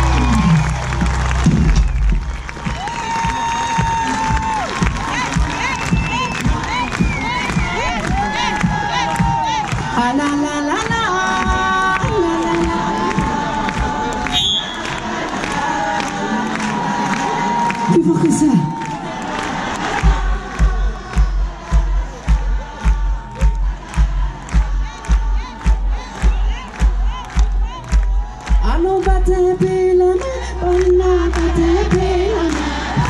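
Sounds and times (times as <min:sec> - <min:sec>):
audience cheering and shouting: 0:00.0 - 0:33.0
kick drum beat: 0:00.9 - 0:10.2, 0:10.8 - 0:14.0, 0:20.0 - 0:29.9.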